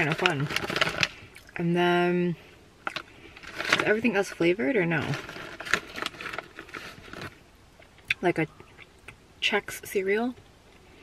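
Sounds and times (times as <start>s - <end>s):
plastic bag crinkling: 0.0s - 1.5s, 2.8s - 7.4s.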